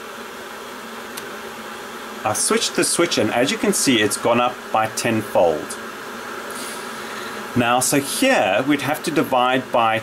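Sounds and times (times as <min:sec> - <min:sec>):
electric kettle hissing: 0:00.0 - 0:10.0.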